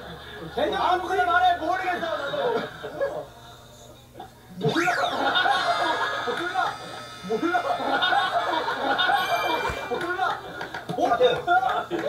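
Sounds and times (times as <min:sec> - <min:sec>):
short rising sound effect: 0:04.7 - 0:10.8.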